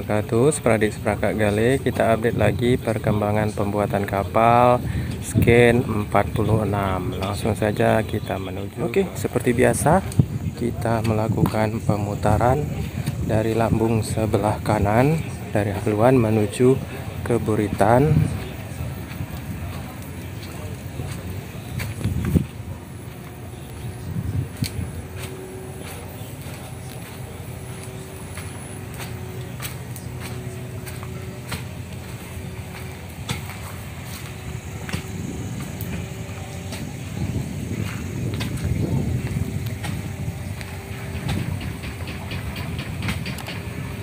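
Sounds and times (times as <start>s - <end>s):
footsteps on open ground: 0.0s - 44.0s.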